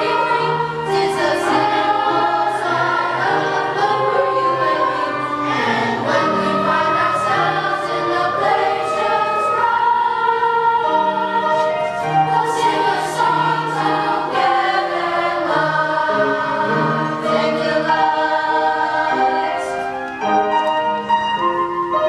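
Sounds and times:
choir singing held chords: 0:00.0 - 0:22.0.

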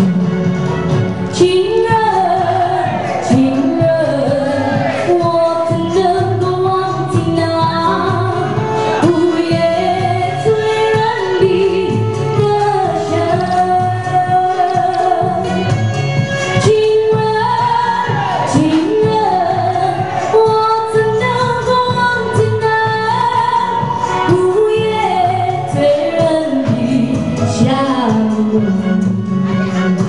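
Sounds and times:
backing music with steady beat: 0:00.0 - 0:30.0
woman singing into microphone: 0:01.3 - 0:15.8, 0:16.4 - 0:30.0.

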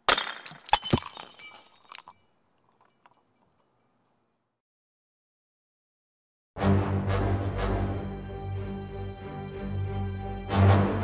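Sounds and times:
high ringing and tinkling: 0:00.7 - 0:03.5.

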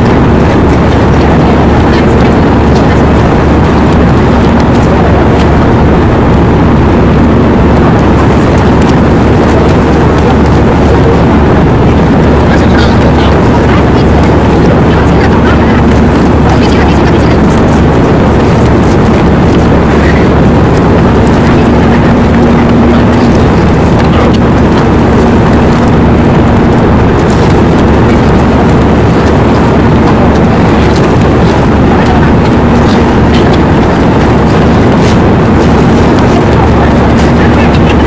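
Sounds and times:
airliner cabin engine noise: 0:00.0 - 0:38.0
faint steady hum: 0:00.0 - 0:38.0.

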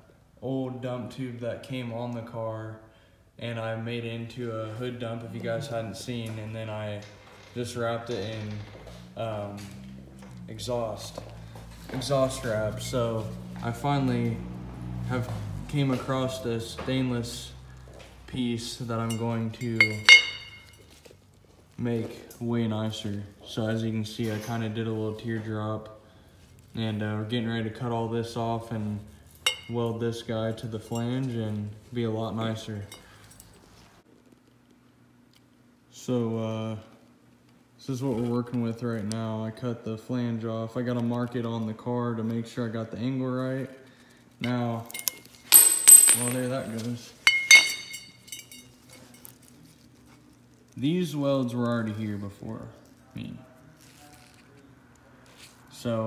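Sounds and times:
metal tube clinking on concrete: 0:19.0 - 0:21.0, 0:29.4 - 0:29.8, 0:44.4 - 0:49.5.

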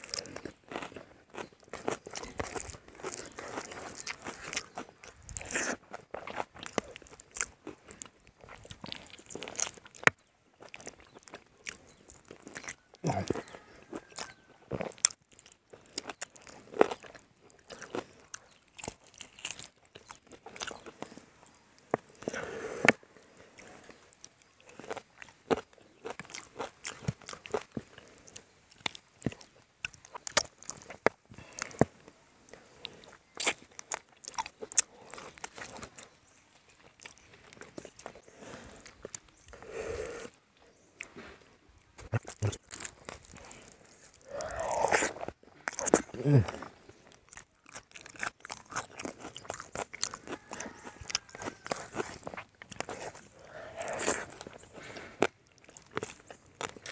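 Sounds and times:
man chewing and crunching food: 0:00.0 - 0:56.9.

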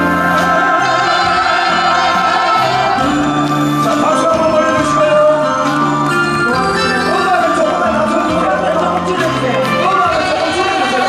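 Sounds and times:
bass line: 0:00.0 - 0:11.0
keyboard chords: 0:00.0 - 0:11.0.

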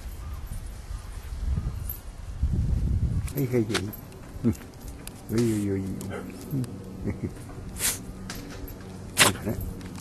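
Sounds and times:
light metallic clinks: 0:00.0 - 0:02.3, 0:03.2 - 0:10.0.

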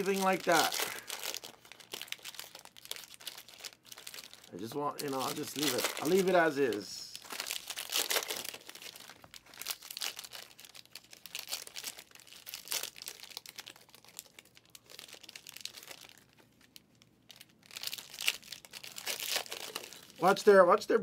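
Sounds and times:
foil wrappers crinkling and tearing: 0:00.0 - 0:20.6.

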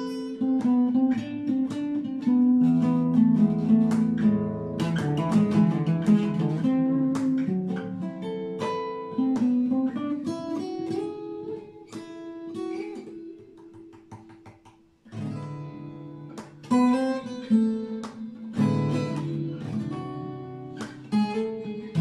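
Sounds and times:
fingerstyle acoustic guitar: 0:00.0 - 0:22.0.

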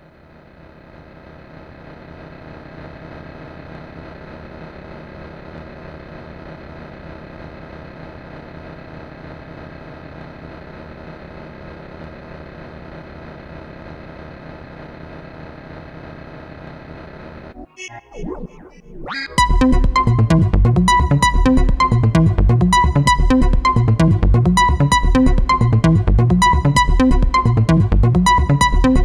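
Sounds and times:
electronic drone: 0:17.5 - 0:29.0.

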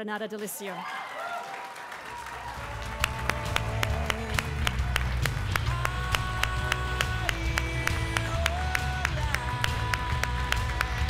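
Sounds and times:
audience applause: 0:00.6 - 0:11.0
bass line: 0:02.6 - 0:11.0.

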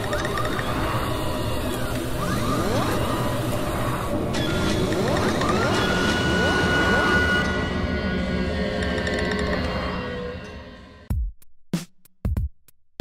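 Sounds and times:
mechanical whirring: 0:00.0 - 0:11.1.

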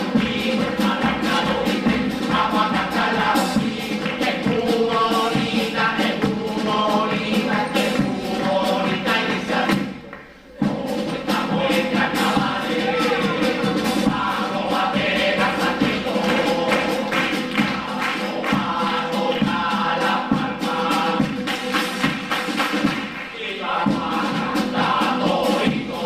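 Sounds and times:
male choir singing: 0:00.0 - 0:26.0
percussion beat: 0:00.0 - 0:26.0.

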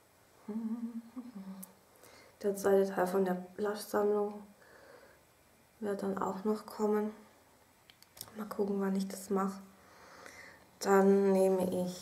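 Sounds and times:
woman humming: 0:00.4 - 0:01.7.

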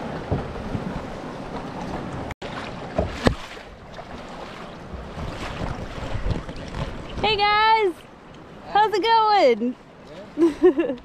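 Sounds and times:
water sloshing against hull: 0:00.0 - 0:11.0
wind buffeting microphone: 0:03.8 - 0:08.7.

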